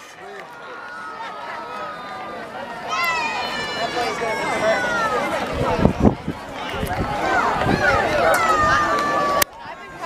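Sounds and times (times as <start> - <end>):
spectators and players calling out: 0.0 - 10.0.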